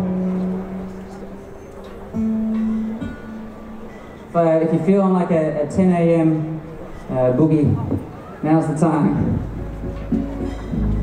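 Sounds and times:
electric guitar notes ringing: 0:00.0 - 0:04.9, 0:09.2 - 0:11.0.

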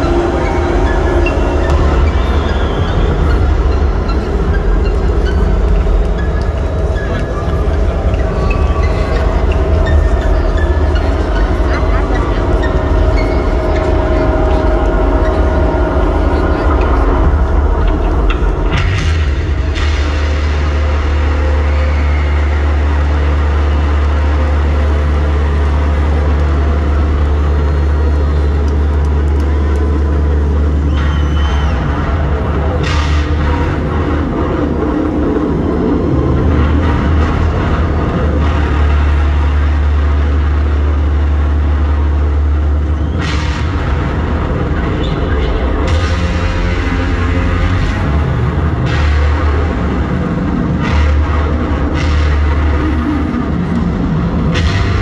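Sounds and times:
crowd cheering and shouting: 0:00.0 - 0:55.0
deep rumbling drone: 0:00.0 - 0:55.0.

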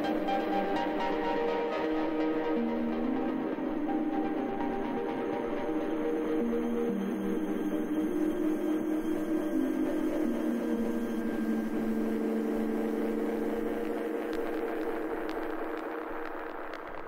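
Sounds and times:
sustained synth pad chords: 0:00.0 - 0:16.7
vinyl crackle clicks: 0:13.6 - 0:17.0.

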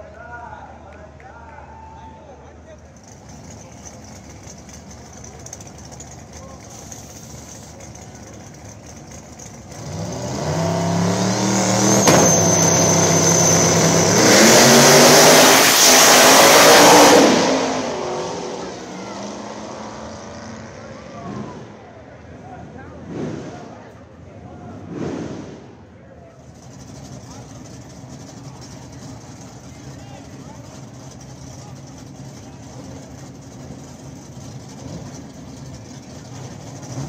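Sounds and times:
drag car engines accelerating: 0:02.4 - 0:37.0.

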